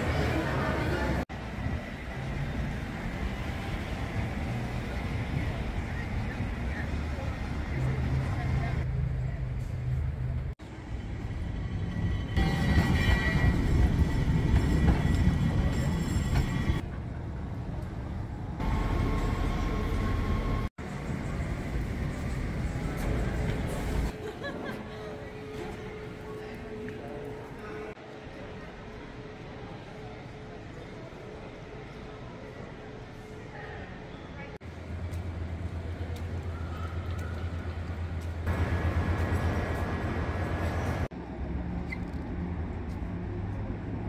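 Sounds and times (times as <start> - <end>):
crowd chatter: 0.0 - 1.8, 19.0 - 40.7
low rumble of rail vehicles: 0.0 - 44.0.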